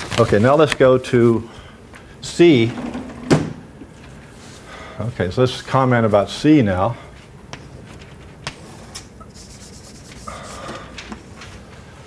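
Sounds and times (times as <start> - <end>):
chalk scratching on blackboard: 9.2 - 10.8.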